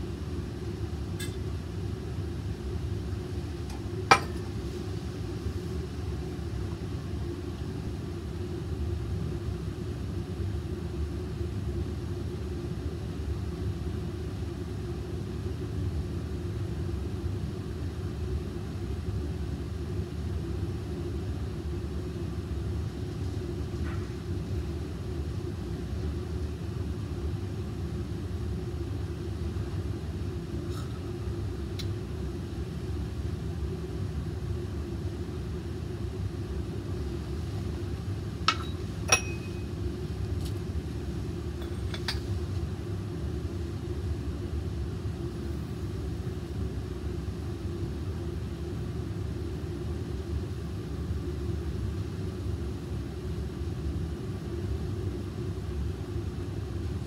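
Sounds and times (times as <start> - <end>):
fume hood ventilation rumble: 0.0 - 57.0.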